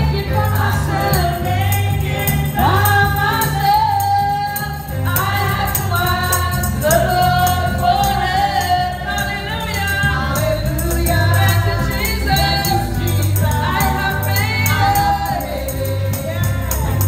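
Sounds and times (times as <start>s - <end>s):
bass guitar: 0.0s - 17.0s
tambourine shaking: 0.0s - 17.0s
women singing: 0.0s - 17.0s.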